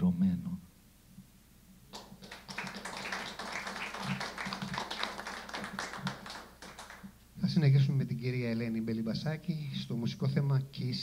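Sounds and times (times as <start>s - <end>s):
audience applauding: 1.9s - 7.1s.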